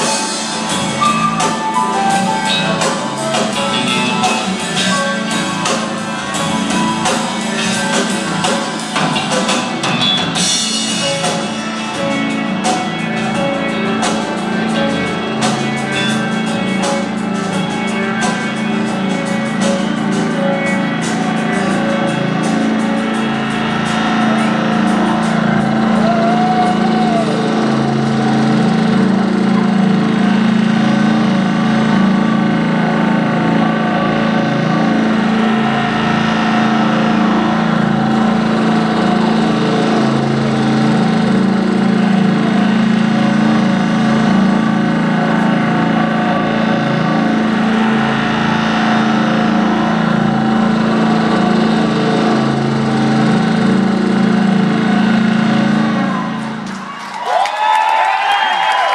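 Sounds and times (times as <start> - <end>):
rock band sustained chord: 0.0 - 57.0.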